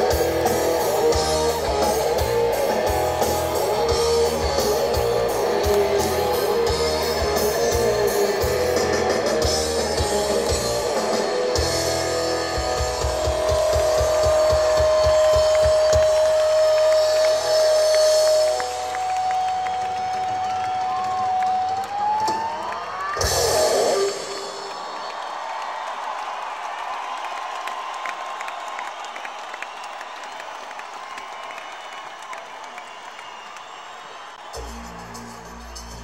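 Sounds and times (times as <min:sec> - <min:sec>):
rock band playing: 0:00.0 - 0:24.9
crowd cheering and applauding: 0:00.0 - 0:36.0.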